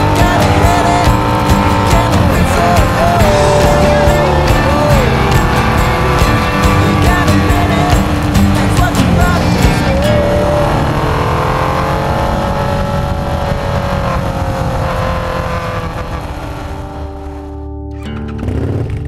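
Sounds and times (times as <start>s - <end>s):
motorcycle engine running: 0.0s - 19.0s
rock music: 0.0s - 19.0s
wind noise: 7.7s - 17.4s.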